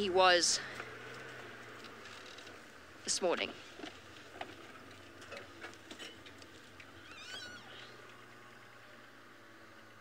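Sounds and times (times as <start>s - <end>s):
vehicle engine running low: 0.0s - 10.0s
high-pitched animal call: 7.0s - 8.0s.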